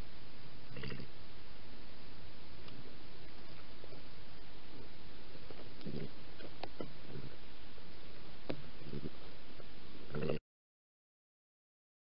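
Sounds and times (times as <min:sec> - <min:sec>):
microphone hiss: 0:00.0 - 0:10.4.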